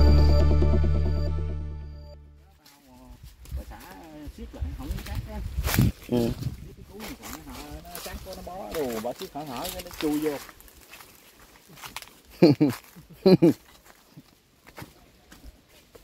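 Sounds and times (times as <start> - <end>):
intro music: 0.0 - 2.5.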